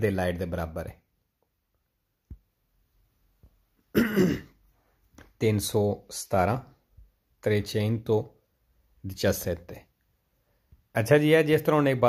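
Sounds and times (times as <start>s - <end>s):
man clearing his throat: 3.9s - 4.6s.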